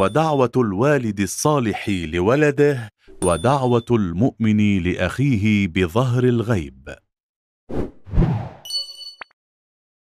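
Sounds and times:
bright metallic ding: 0:08.7 - 0:09.4.

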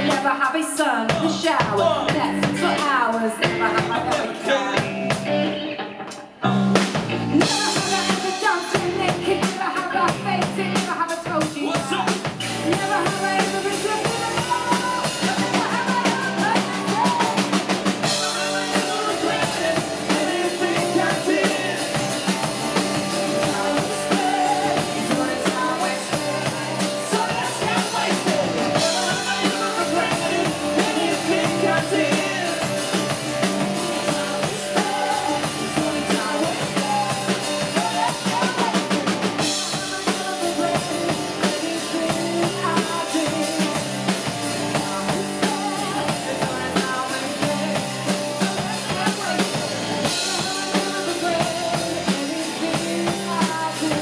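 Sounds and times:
country-rock band playing: 0:00.0 - 0:54.0
drums driving: 0:00.0 - 0:54.0.

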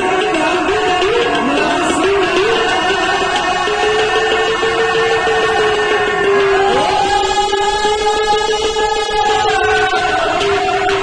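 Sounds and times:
people singing a long note: 0:00.0 - 0:11.0.

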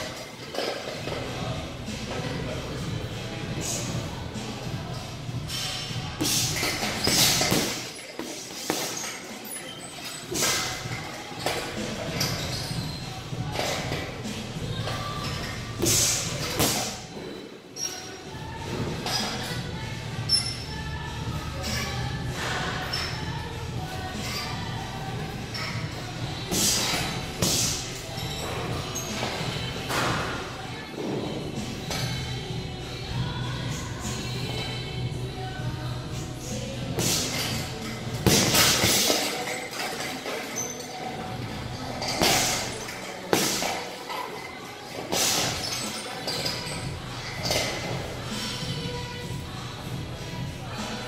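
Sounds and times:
background music: 0:00.0 - 0:51.0.

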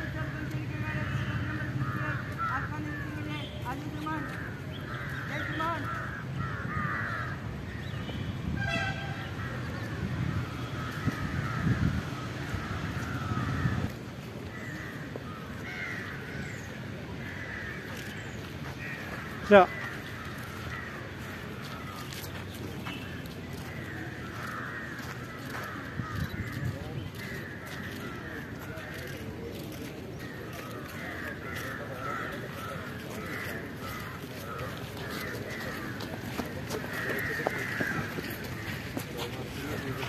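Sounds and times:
crows cawing: 0:00.0 - 0:08.0, 0:09.2 - 0:40.0.

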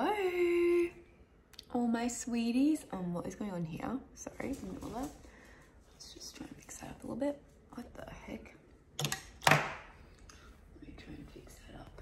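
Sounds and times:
woman speaking softly: 0:00.0 - 0:01.0, 0:06.0 - 0:08.6, 0:10.7 - 0:12.0.

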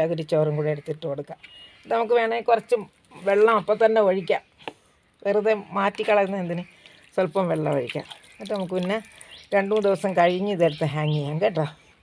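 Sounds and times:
woman talking: 0:00.0 - 0:04.5, 0:05.2 - 0:11.8.

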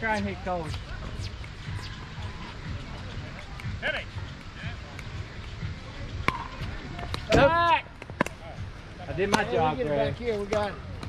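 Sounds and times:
faint distant voices: 0:00.0 - 0:11.0
outdoor court hum: 0:00.0 - 0:11.0.

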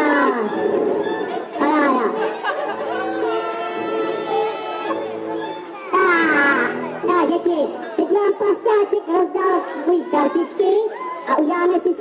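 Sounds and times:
background music: 0:00.0 - 0:12.0
chatter: 0:00.0 - 0:12.0.

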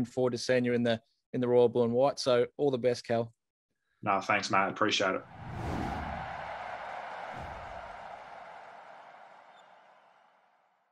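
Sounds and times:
airy whoosh: 0:05.3 - 0:06.6.

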